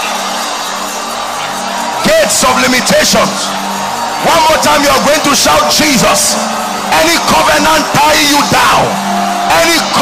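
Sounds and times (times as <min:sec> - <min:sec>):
music of long held chords: 0:00.0 - 0:10.0
noise of large congregation: 0:00.0 - 0:10.0.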